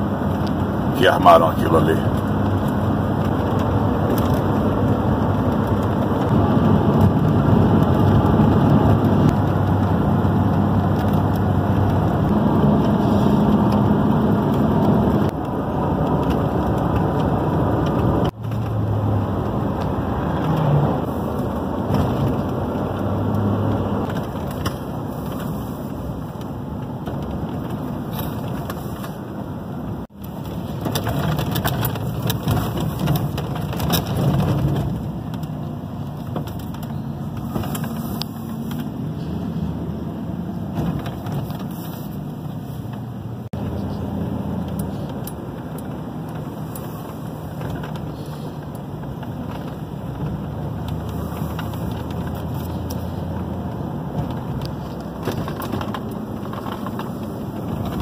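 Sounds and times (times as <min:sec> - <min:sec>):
low engine hum: 0:00.0 - 0:58.0
road noise inside car: 0:00.0 - 0:58.0.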